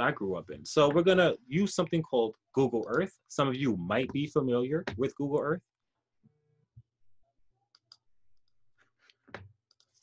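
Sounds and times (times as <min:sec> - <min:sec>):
computer mouse clicks: 0:09.6 - 0:10.0.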